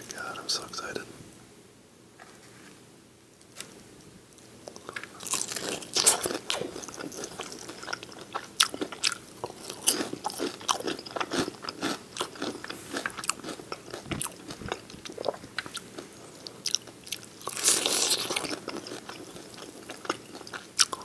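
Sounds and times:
chewing: 0:04.7 - 0:21.0
crunching fried chicken: 0:04.7 - 0:21.0.

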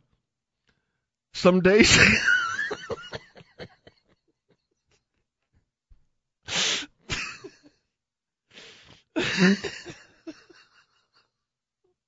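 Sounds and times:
man laughing breathily: 0:02.0 - 0:04.2, 0:06.6 - 0:07.7, 0:08.6 - 0:11.3.

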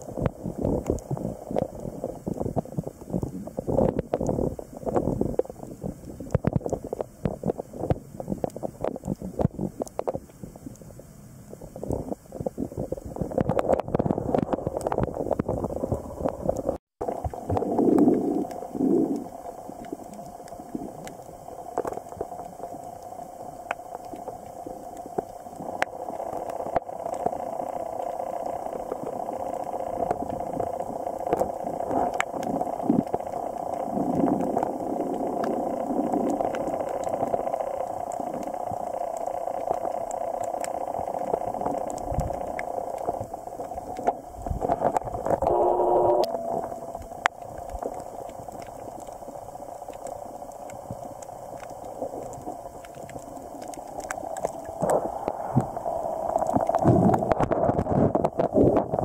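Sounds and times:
water gurgling: 0:00.0 - 0:10.9, 0:11.5 - 0:59.0
muffled underwater hiss: 0:00.0 - 0:59.0
buzzing bubbling burst: 0:44.5 - 0:49.0.

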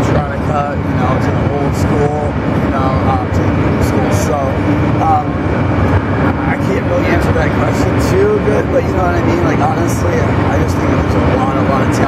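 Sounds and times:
person talking: 0:00.0 - 0:05.4, 0:06.3 - 0:12.0
low background rumble: 0:00.0 - 0:12.0.

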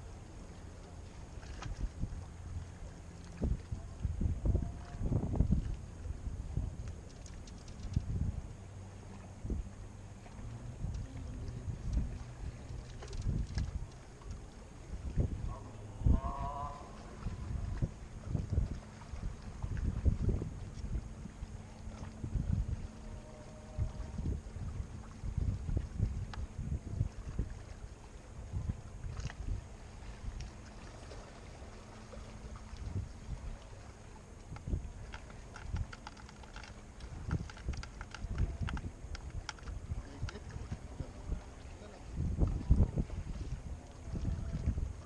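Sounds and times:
wind gusting on microphone: 0:03.3 - 0:30.5, 0:31.2 - 0:33.9, 0:34.5 - 0:45.0.

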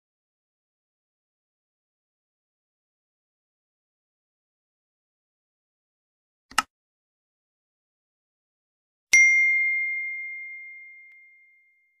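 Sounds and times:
high bell-like ding: 0:09.1 - 0:12.0.

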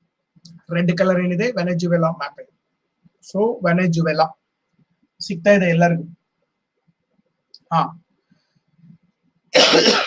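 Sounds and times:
man coughing: 0:09.6 - 0:10.0.

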